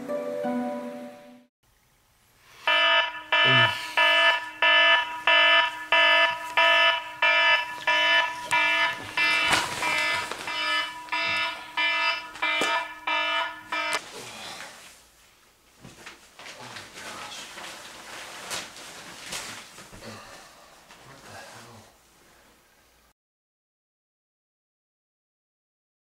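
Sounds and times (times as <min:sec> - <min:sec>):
smartphone alarm beeping: 0:02.7 - 0:14.0.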